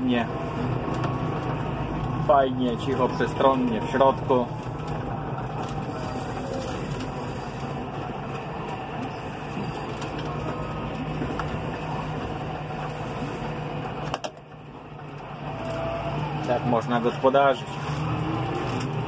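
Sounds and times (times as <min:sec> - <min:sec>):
tractor engine droning: 0:00.0 - 0:19.0.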